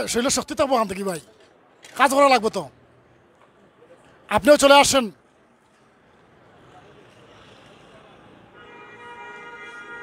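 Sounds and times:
faint street traffic: 0.0 - 10.0.

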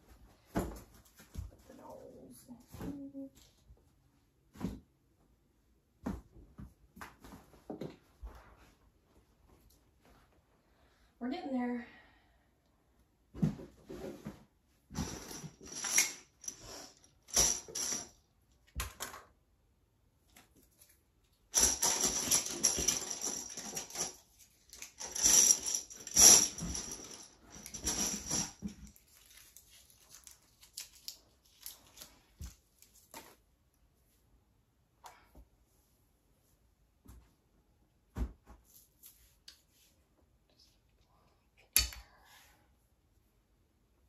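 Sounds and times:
plastic toys clattering in a box: 15.0 - 18.2, 21.5 - 32.1.

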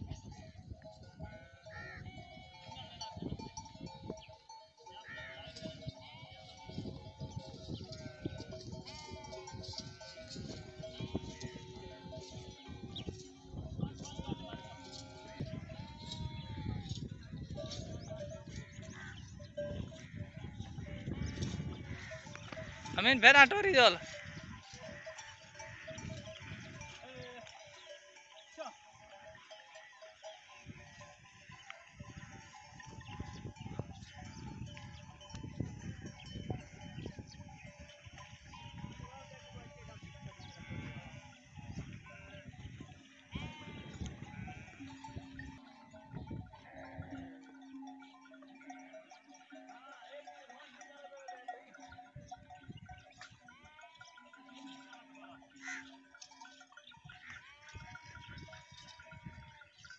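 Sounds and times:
sheep and goats bleating: 0.0 - 59.9.

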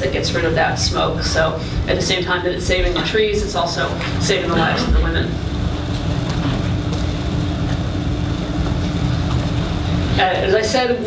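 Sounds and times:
low room rumble: 0.0 - 11.0
thin steady hum: 0.0 - 11.0.

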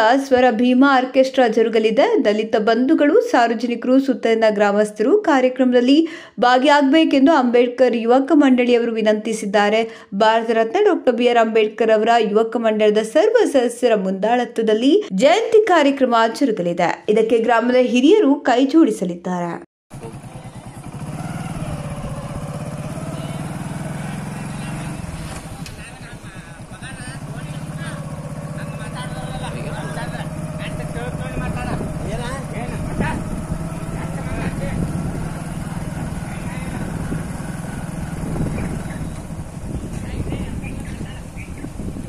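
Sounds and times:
vehicle engine running: 19.9 - 42.0.

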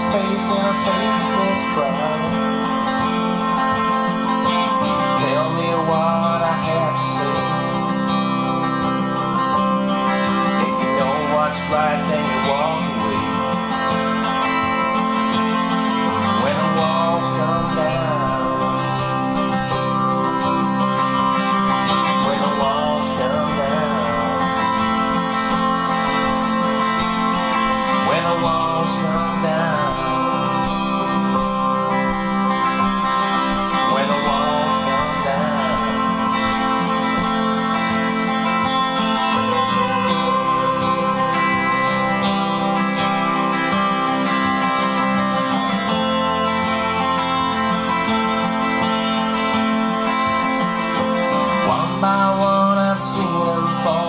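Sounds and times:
electric guitar bent notes: 0.0 - 54.0.

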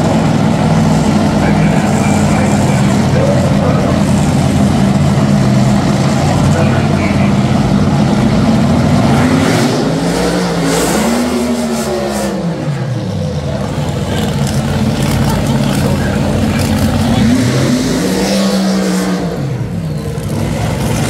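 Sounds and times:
dragster engine roaring: 0.0 - 21.0.

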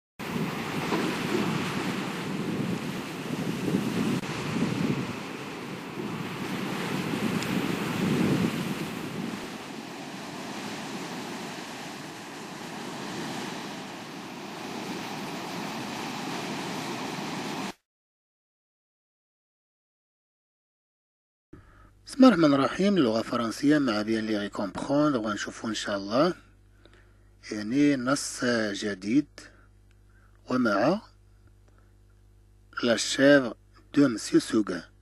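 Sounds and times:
surf rushing: 0.2 - 17.8
wind: 0.2 - 17.8.

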